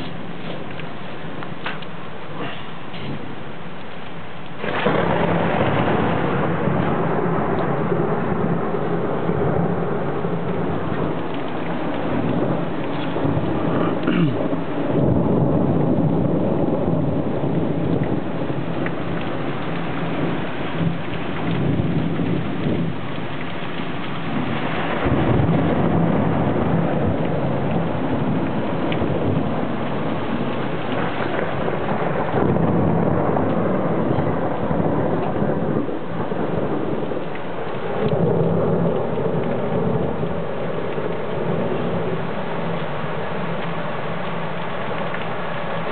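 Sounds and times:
heavy rain pouring: 0.0 - 45.9
thunder rumbling: 0.0 - 45.9.

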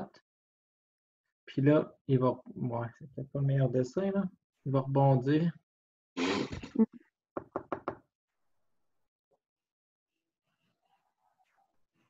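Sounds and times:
knocks on a hard surface: 7.4 - 8.0.

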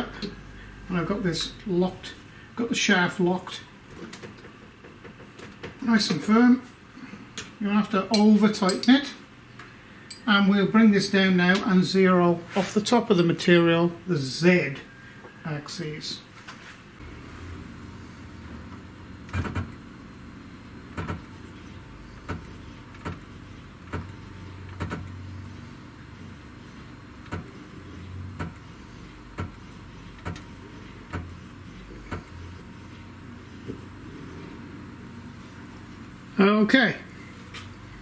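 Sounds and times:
low steady hum: 5.4 - 38.0.

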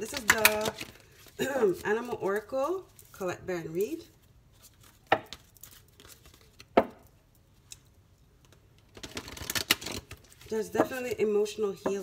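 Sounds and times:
cards being shuffled: 0.0 - 3.2, 4.5 - 6.7, 8.5 - 11.1.

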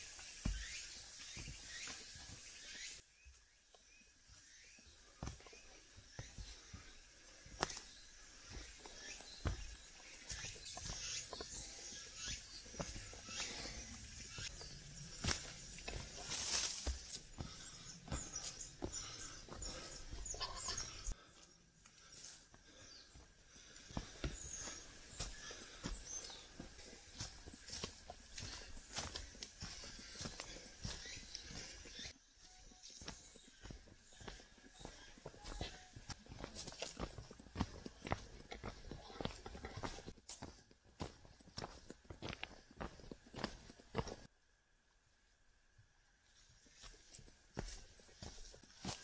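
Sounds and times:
boots crunching on leaf litter: 13.3 - 19.1, 24.0 - 32.1.

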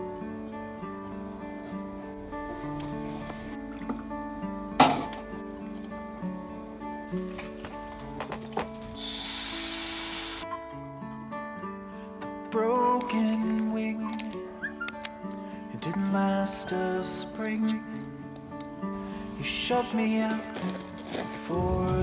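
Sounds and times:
soft acoustic guitar music: 0.0 - 22.0
batter sizzling in hot wok: 9.0 - 10.4.

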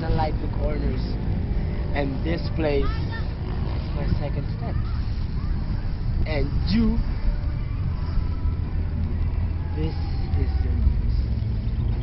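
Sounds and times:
man speaking: 1.8 - 3.0, 6.2 - 7.1.

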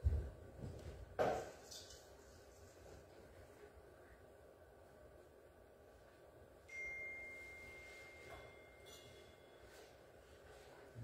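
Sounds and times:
high bell-like note ringing: 6.6 - 10.0.

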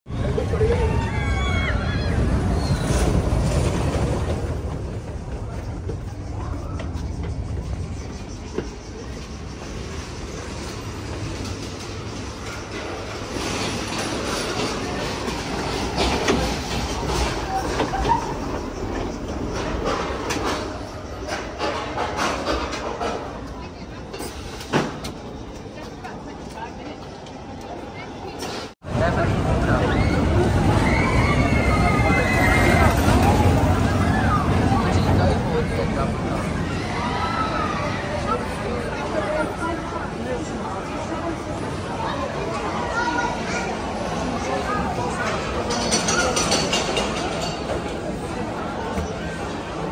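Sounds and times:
roller coaster rumbling on track: 0.1 - 49.9.

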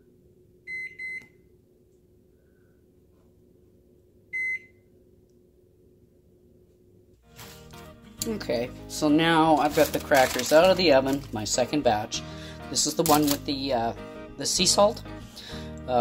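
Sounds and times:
faint steady hum: 0.0 - 7.2
microwave keypad beeps: 0.7 - 1.4, 4.3 - 4.8.

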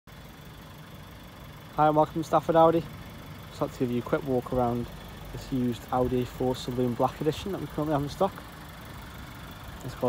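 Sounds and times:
car engine idling: 0.1 - 10.0
man speaking: 3.6 - 8.4.

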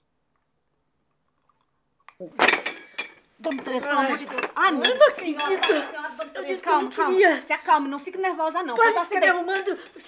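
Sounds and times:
china and cutlery clattering: 2.4 - 6.8, 8.8 - 10.0.

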